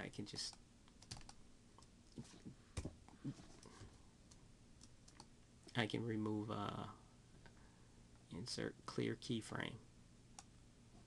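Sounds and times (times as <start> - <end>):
computer mouse clicks: 0.4 - 2.2, 4.3 - 5.3.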